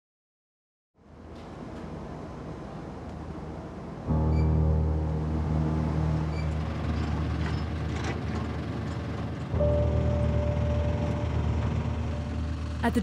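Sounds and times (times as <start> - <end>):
truck engine humming: 3.8 - 13.0
sustained higher note: 4.1 - 8.3, 9.5 - 13.0
background music: 4.1 - 13.0.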